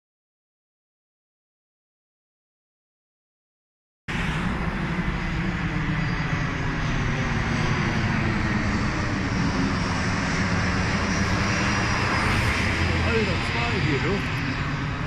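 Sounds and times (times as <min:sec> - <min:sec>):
airplane passing overhead: 0:04.1 - 0:15.0.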